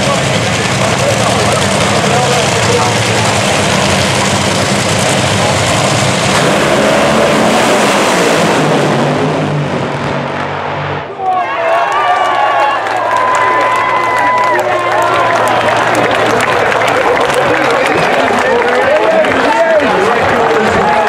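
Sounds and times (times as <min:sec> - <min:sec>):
voices: 0:00.0 - 0:05.7, 0:11.1 - 0:21.0
dragster engines running loudly: 0:00.0 - 0:11.1, 0:14.0 - 0:21.0
crowd noise: 0:00.0 - 0:21.0.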